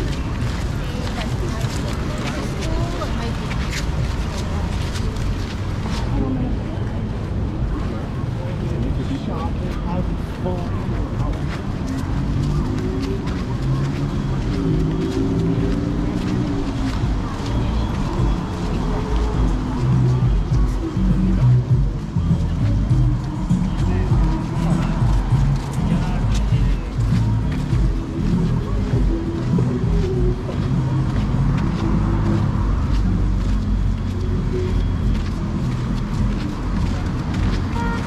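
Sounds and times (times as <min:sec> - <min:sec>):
road traffic: 0:00.0 - 0:38.0
voices of passersby: 0:00.0 - 0:38.0
background music: 0:11.3 - 0:38.0.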